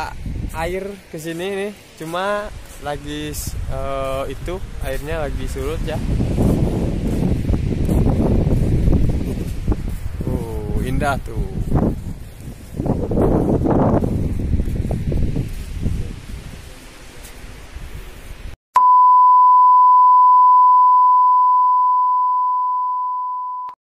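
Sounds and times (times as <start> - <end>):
electronic test-tone beep: 18.8 - 23.8.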